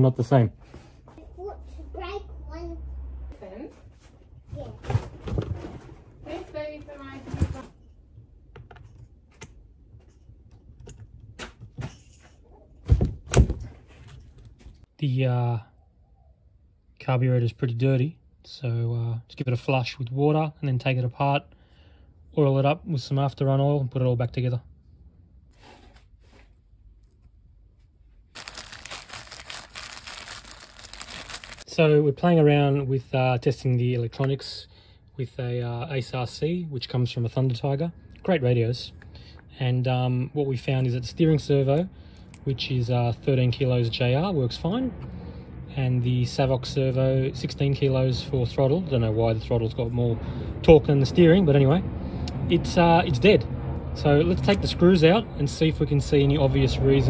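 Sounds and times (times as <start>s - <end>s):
plastic bag crinkling: 28.3s - 31.7s.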